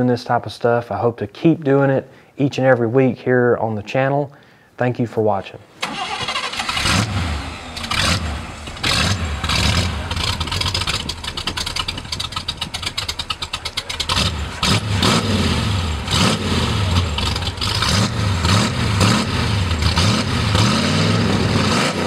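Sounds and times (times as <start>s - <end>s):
car engine revving: 5.8s - 22.0s.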